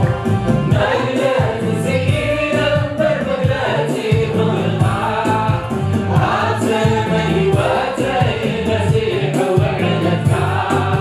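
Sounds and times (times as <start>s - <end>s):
choir and congregation singing: 0.0s - 11.0s
low instrumental accompaniment: 0.0s - 11.0s.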